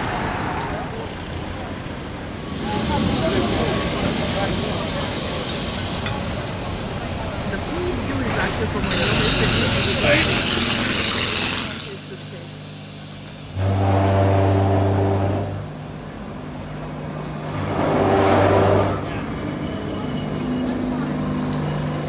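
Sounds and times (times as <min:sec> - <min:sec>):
tram low steady hum: 0:00.1 - 0:22.0.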